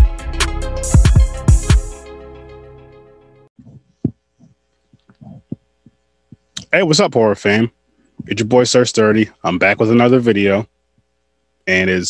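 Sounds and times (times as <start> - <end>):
faint steady hum: 3.6 - 12.0.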